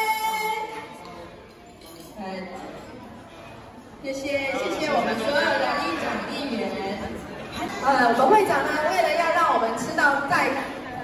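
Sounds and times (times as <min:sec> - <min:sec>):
crowd chatter in a large hall: 0:00.0 - 0:11.0.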